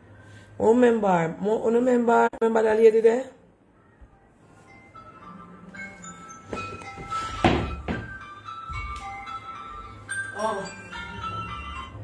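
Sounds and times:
background music: 4.2s - 12.0s.

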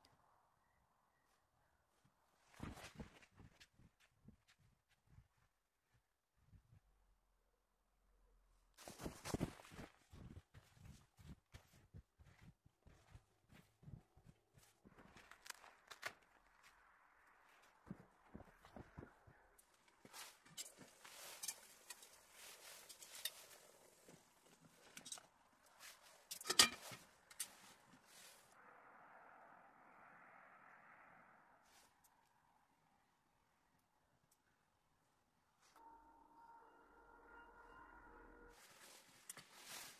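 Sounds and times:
boots crunching through snow: 8.8s - 15.6s, 38.6s - 39.9s.

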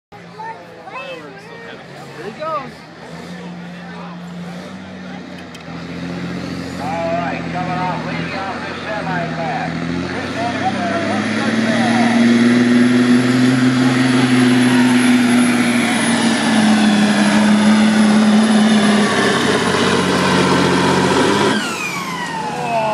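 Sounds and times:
heavy diesel engine drone: 0.1s - 22.9s.

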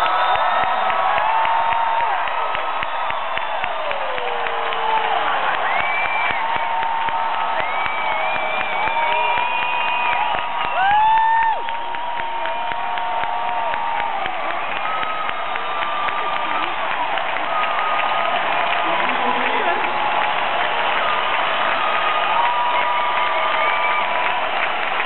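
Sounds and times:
crowd cheering and whooping: 0.0s - 25.0s
loud shout: 0.0s - 25.0s
people clapping: 0.0s - 25.0s.

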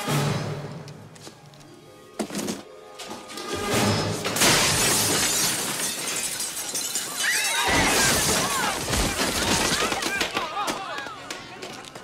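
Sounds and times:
debris crashing: 2.2s - 10.8s
window glass shattering: 3.9s - 10.2s.

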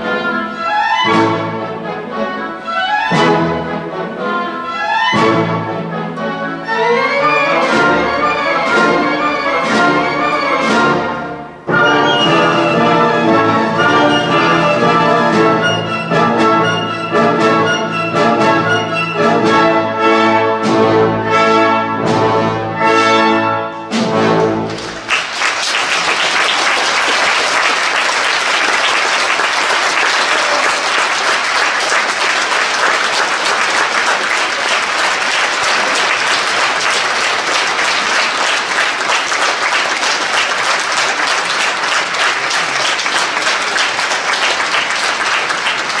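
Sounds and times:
orchestra chord: 5.2s - 24.9s
audience applause: 24.6s - 46.0s.

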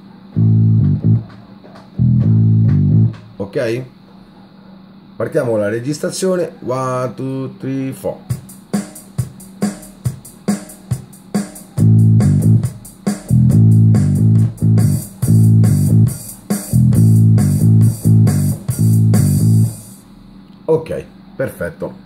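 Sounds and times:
bass line: 0.3s - 1.3s, 2.0s - 3.3s, 11.8s - 16.2s, 16.8s - 19.8s.

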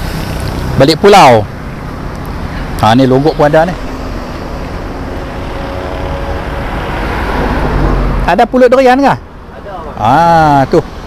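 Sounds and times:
motor vehicle passing: 0.0s - 11.0s.

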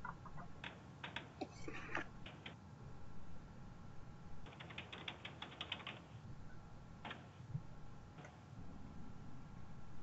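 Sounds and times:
rapid mechanical clicks: 0.0s - 1.5s, 4.4s - 6.2s.

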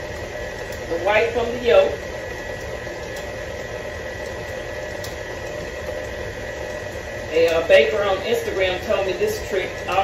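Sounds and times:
stand mixer motor hum: 0.0s - 10.0s
thin steady whine: 0.0s - 10.0s.

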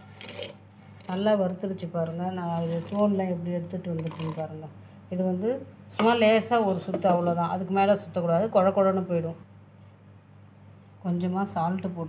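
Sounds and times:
woman talking: 1.1s - 9.5s, 11.0s - 12.0s.

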